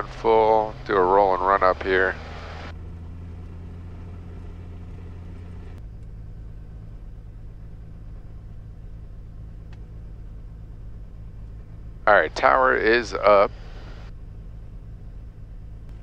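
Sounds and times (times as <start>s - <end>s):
aircraft piston engine running: 0.0s - 16.0s.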